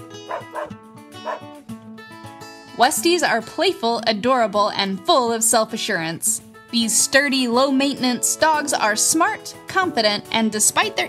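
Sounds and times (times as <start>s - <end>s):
acoustic guitar music: 0.0s - 11.0s
dog barking: 0.3s - 1.5s.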